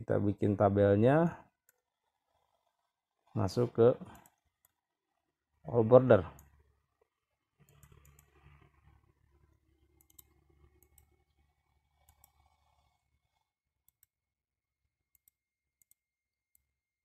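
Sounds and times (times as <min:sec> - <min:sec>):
computer mouse clicks: 0:04.0 - 0:04.8, 0:06.3 - 0:06.6, 0:07.6 - 0:09.0, 0:09.8 - 0:11.3, 0:12.0 - 0:14.2, 0:15.1 - 0:16.7.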